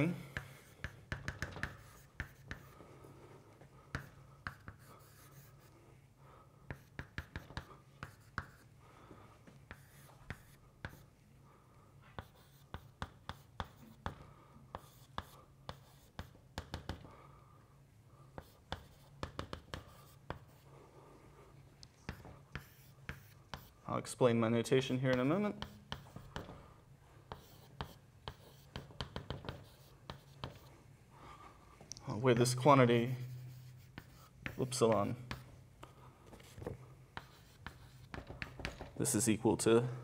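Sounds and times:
chalk tapping and scratching on blackboard: 0.0 - 2.9, 3.9 - 5.8, 6.7 - 8.7, 9.4 - 11.2, 12.0 - 17.2, 18.3 - 20.7, 22.0 - 23.9, 25.0 - 30.8, 32.1 - 39.4
low steady hum: 0.0 - 40.0.

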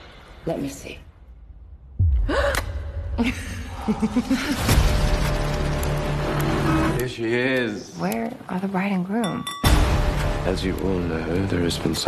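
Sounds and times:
deep boom: 1.4 - 5.6.

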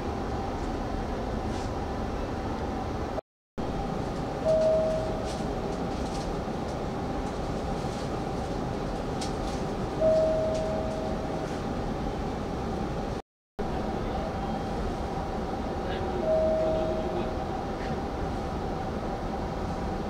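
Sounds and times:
train car hum and hiss: 0.0 - 20.0.

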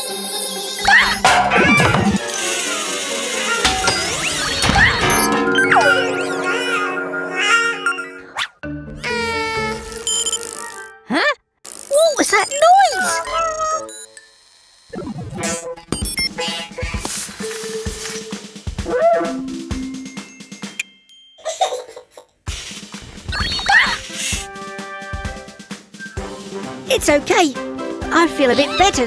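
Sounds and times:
cartoon background music: 0.0 - 14.2, 14.9 - 20.8, 23.2 - 29.0
cartoon bouncing effects: 0.8 - 2.2, 3.5 - 8.5, 11.9 - 13.9.

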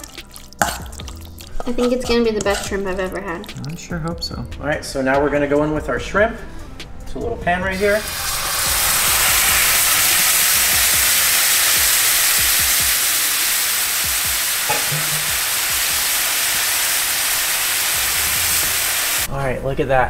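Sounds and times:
shrimp sizzling in a frying pan: 7.8 - 19.3.

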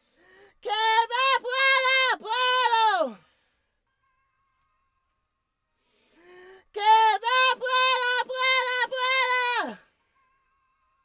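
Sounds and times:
man singing with vibrato: 6.8 - 9.8.

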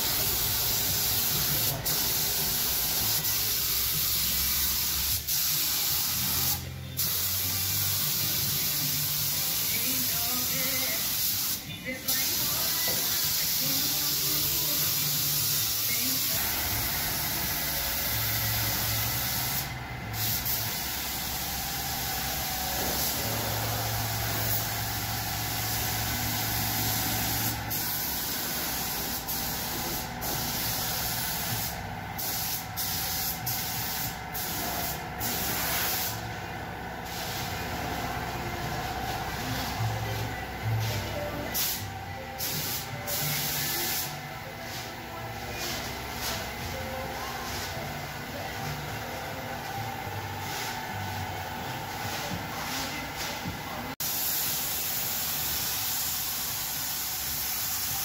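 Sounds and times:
paint spray gun hissing: 0.0 - 36.3, 37.0 - 38.2, 54.0 - 58.0.

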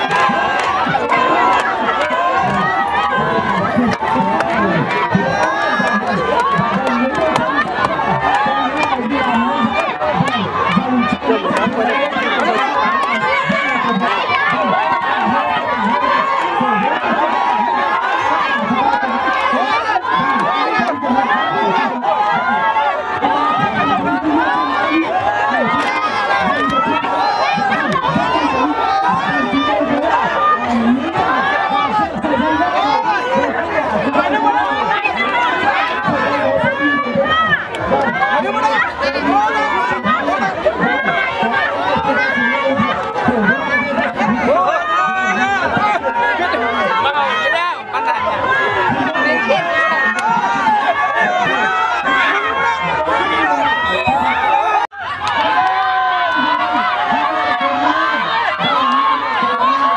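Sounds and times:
crowd babble: 0.0 - 59.9.

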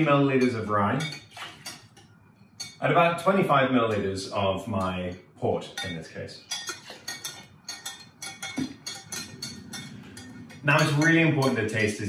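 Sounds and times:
metal spoon clinking in glass jug: 0.0 - 2.0, 5.7 - 12.0.

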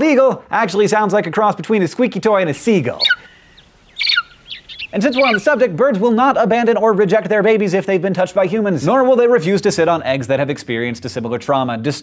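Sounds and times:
eagle calling: 2.8 - 5.7.

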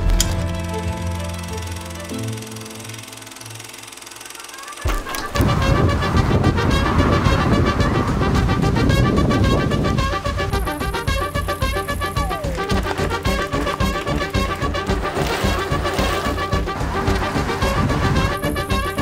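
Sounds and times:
lively rhythmic band music: 4.9 - 19.0.

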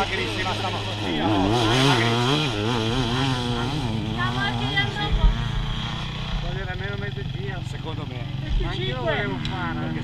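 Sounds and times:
voices talking: 0.0 - 10.0
motorcycle engine idling: 3.1 - 10.0.

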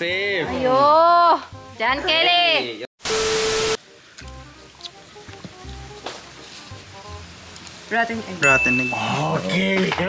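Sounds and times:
tv static burst: 3.0 - 3.8
soft background music: 3.8 - 10.0.

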